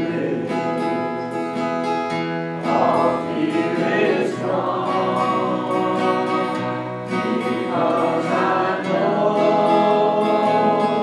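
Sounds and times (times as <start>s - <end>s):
gospel singing with accompaniment: 0.0s - 1.4s, 2.6s - 11.0s.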